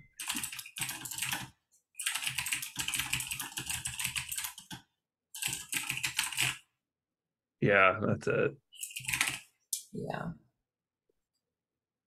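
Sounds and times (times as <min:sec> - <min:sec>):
computer keyboard typing: 0:00.1 - 0:06.7, 0:08.8 - 0:09.5.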